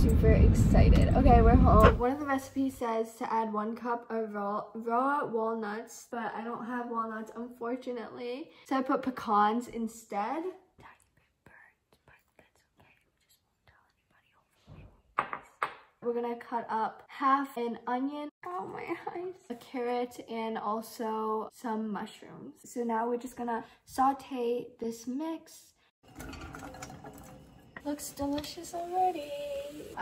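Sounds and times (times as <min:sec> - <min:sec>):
woman whispering: 0:10.8 - 0:14.5
vegetables clattering into pan: 0:26.1 - 0:28.6
vegetables sizzling in frying pan: 0:27.8 - 0:30.0.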